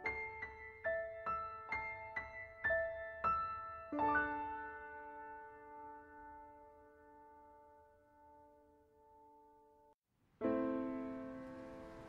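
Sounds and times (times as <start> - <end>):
slow soft piano music: 0.0 - 12.0.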